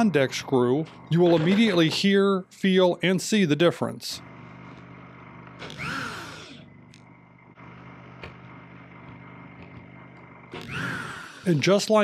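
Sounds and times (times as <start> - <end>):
cordless drill motor hum: 4.2 - 11.5.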